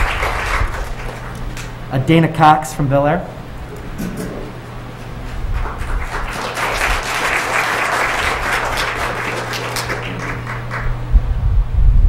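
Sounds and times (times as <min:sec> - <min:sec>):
audience applauding: 0:00.0 - 0:01.9, 0:03.6 - 0:11.1
steady low hum: 0:00.0 - 0:12.0
low thumps: 0:03.2 - 0:06.2.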